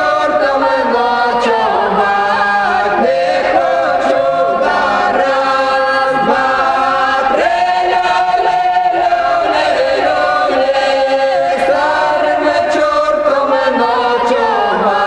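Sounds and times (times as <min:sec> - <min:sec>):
a cappella vocal ensemble singing: 0:00.0 - 0:15.0.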